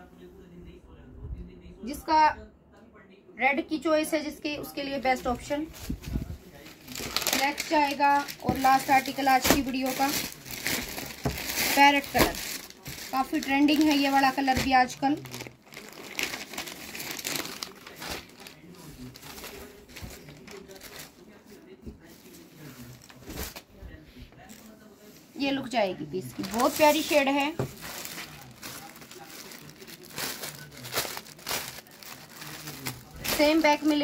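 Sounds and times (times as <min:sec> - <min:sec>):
fabric crinkling and rustling: 0:04.7 - 0:34.0.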